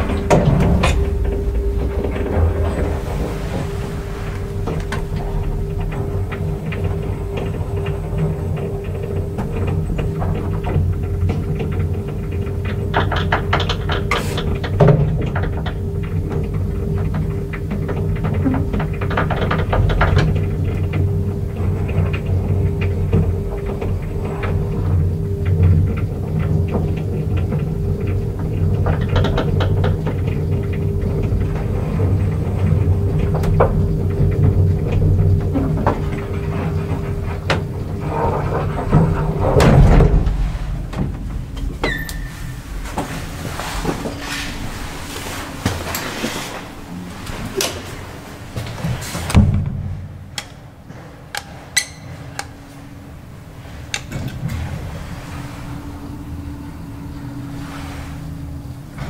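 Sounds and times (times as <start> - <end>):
small clicks and rattles: 0.0 - 44.6
elevator car stopping thump: 0.0 - 46.6
clanks and knocks: 0.0 - 55.8
elevator machine hum: 0.0 - 59.0.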